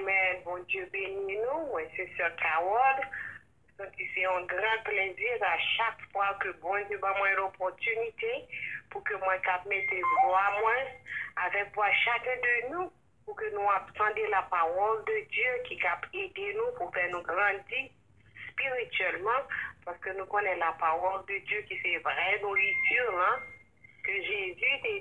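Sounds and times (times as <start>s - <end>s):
person speaking over telephone: 0.0s - 25.0s.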